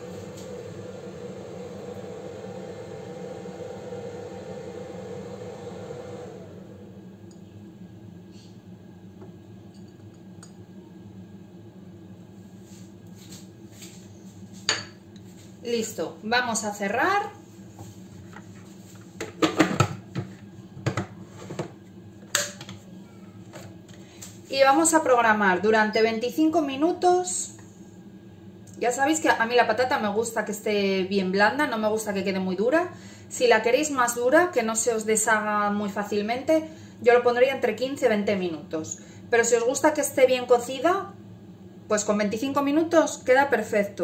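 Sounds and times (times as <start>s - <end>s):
whirring hum: 0.0s - 44.0s.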